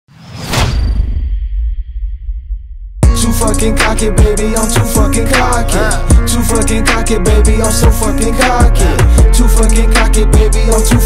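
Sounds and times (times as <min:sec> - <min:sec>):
whoosh: 0:00.1 - 0:03.0.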